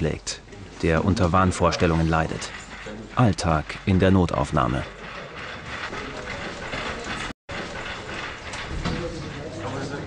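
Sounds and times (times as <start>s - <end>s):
people walking: 0.0s - 10.0s
rattling wheeled stretcher: 0.0s - 10.0s.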